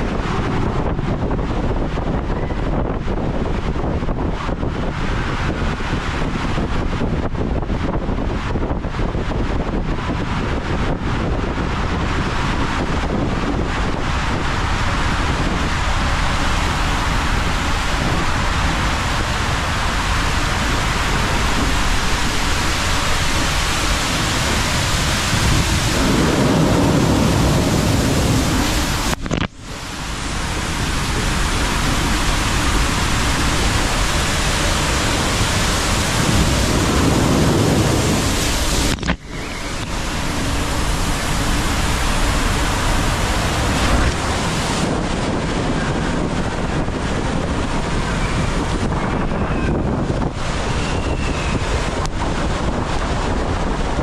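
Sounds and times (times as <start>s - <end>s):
low rumbling: 0.0s - 54.0s
water and air rushing in a tube slide: 0.0s - 54.0s.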